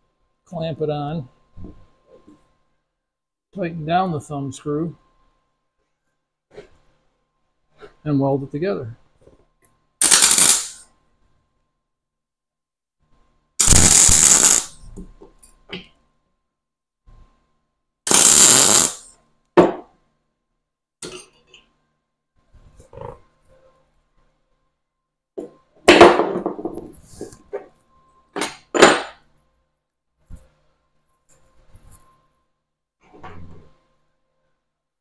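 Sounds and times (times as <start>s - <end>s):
welder arc buzzing: 10.0s - 10.8s, 13.6s - 14.9s, 18.1s - 19.1s.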